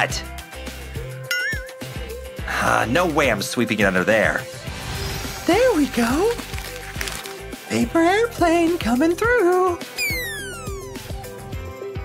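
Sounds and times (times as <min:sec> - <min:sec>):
background music with beat: 0:08.3 - 0:12.0
falling cartoon whistle: 0:10.0 - 0:11.3.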